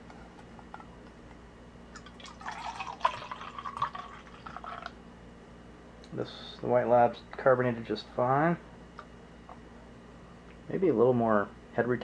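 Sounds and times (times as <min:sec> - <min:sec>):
beer pouring into glass: 0:01.9 - 0:05.0.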